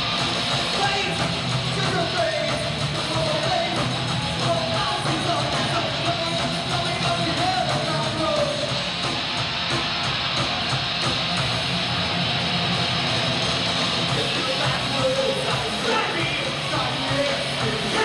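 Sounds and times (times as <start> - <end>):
electric guitar: 0.0 - 18.0
rock band playing: 0.0 - 18.0.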